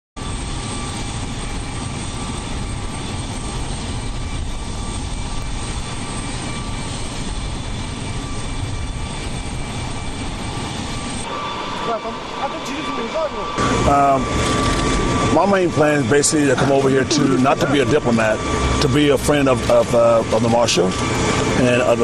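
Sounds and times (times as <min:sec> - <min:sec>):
jet engine rushing and whining: 0:00.2 - 0:22.0.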